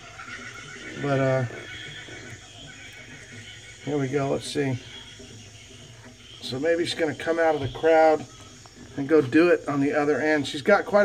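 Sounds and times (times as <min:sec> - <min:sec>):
man speaking: 0:01.0 - 0:01.6, 0:03.8 - 0:05.0, 0:06.4 - 0:08.3, 0:09.0 - 0:11.0.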